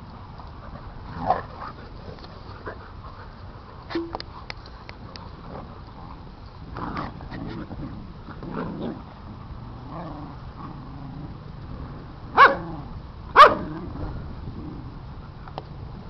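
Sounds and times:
dogs growling: 5.3s - 12.0s
dog barking loudly: 12.4s - 12.7s, 13.4s - 13.7s.

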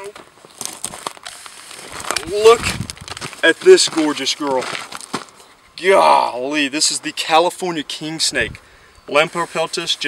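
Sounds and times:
footsteps on gravel: 0.0s - 5.4s
dry leaves and brush crackling: 0.0s - 5.5s.

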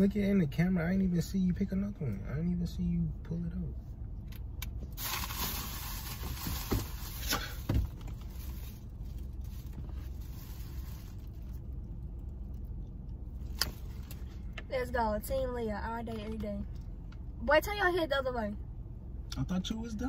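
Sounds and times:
steady low hum: 0.0s - 20.0s.

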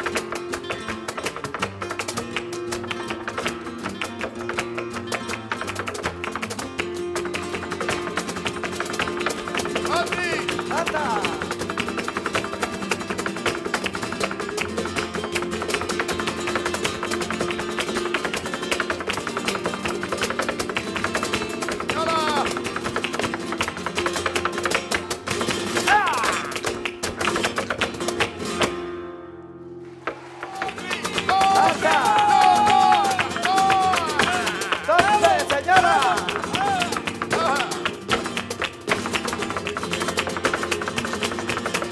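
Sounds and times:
flamenco guitars: 0.0s - 41.9s
rapid percussive strikes: 29.8s - 41.9s
short sung cries: 30.3s - 37.8s.

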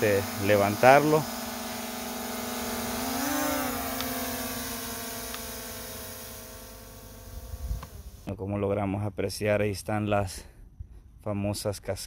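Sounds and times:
drone propellers whining: 0.0s - 8.3s.

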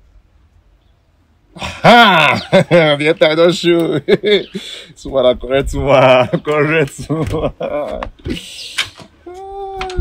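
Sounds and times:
man breathing: 4.5s - 5.0s
man's long held vocal call: 8.3s - 10.0s.

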